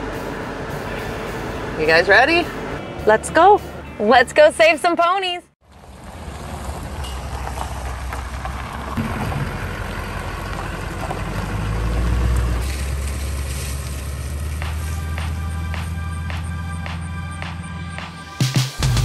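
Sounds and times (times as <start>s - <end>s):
trucks driving past: 0.0s - 19.0s.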